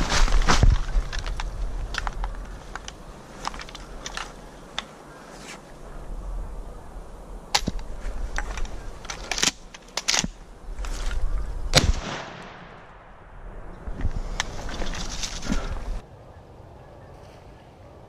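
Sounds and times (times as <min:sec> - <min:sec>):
low rumble: 0:10.5 - 0:16.0
shotgun shots with echo: 0:11.7 - 0:12.9.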